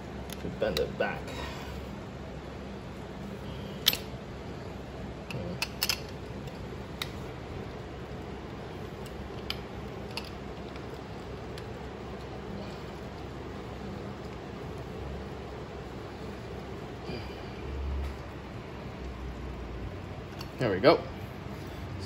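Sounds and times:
low hum of machinery: 0:00.0 - 0:22.0
metal tools clicking and knocking: 0:05.3 - 0:07.1.

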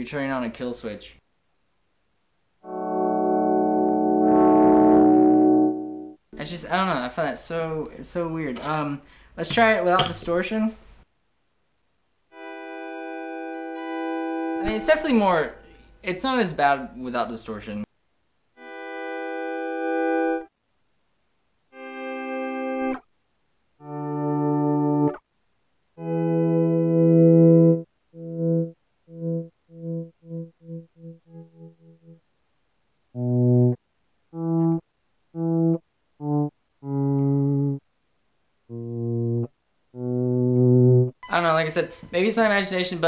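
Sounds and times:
clean electric guitar swells: 0:02.6 - 0:06.2, 0:12.6 - 0:14.7.

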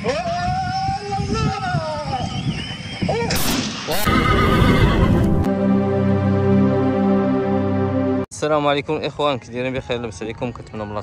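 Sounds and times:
loud noisy din: 0:03.3 - 0:05.5
background music: 0:04.0 - 0:08.3.

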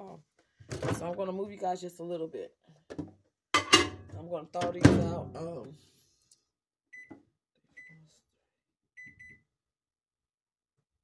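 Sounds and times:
microwave keypad beeping: 0:06.9 - 0:07.1, 0:09.0 - 0:09.4.

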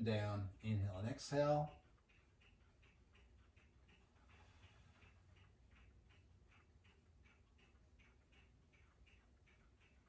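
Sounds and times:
faint regular ticking: 0:00.0 - 0:10.0.

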